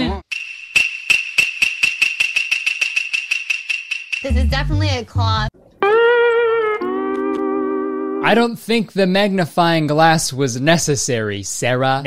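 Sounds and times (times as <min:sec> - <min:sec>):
rapid jingling percussion: 0:00.3 - 0:04.9.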